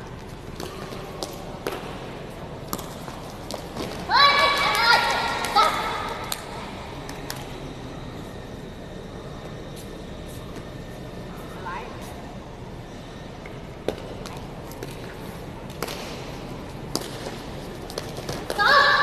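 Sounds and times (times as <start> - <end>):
sports hall hum: 0.0 - 19.0.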